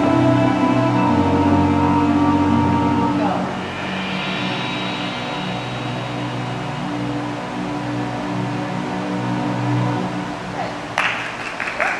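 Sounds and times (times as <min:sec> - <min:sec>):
music with long held notes: 0:00.0 - 0:10.6.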